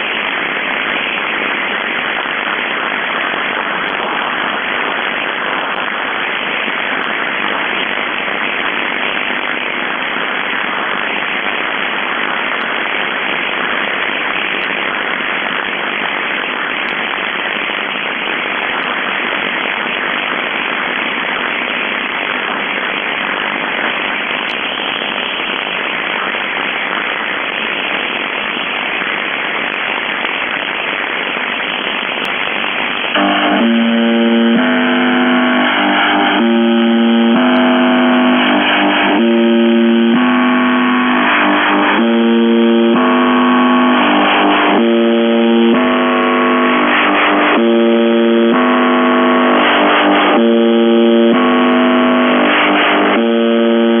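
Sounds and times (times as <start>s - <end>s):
shortwave radio static hiss: 0.0s - 54.0s
stepping electronic tones: 33.2s - 54.0s.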